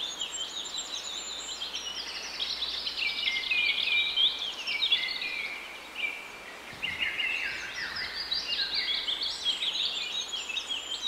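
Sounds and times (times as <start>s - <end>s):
birds chirping and twittering: 0.0s - 11.0s.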